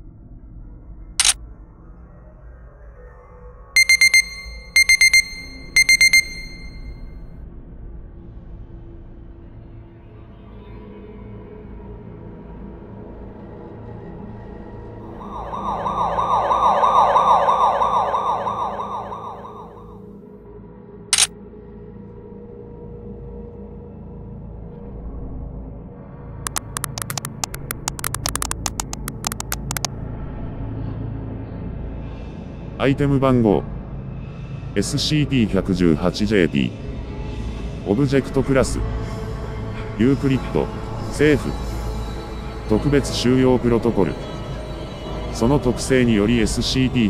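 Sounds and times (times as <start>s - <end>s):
short electronic beep: 3.8s - 7.0s, 15.2s - 19.9s, 26.5s - 29.9s
low electronic drone: 15.2s - 19.9s
synthesized warbling tone: 15.2s - 19.9s, 26.5s - 29.9s
sharp click: 26.5s - 29.9s.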